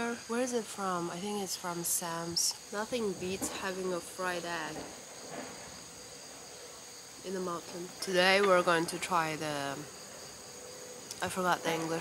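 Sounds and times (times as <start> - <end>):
high-pitched insect chorus: 0.0 - 12.0.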